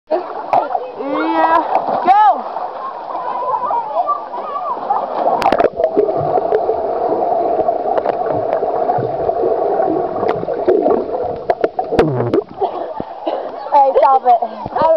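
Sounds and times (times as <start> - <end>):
voices: 0.1 - 5.5
underwater rushing and bubbling: 1.6 - 14.9
water splash: 4.4 - 6.7, 7.8 - 13.1
low underwater thuds: 5.1 - 13.5.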